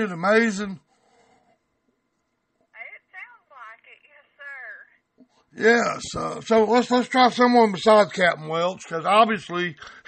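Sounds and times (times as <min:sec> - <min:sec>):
woman speaking over telephone: 0:02.7 - 0:05.0.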